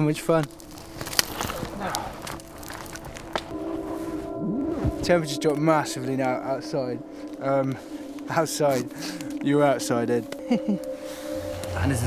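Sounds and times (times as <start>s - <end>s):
sharp wood snaps: 0.0s - 3.6s, 7.3s - 9.5s
campfire crackling: 0.0s - 12.0s.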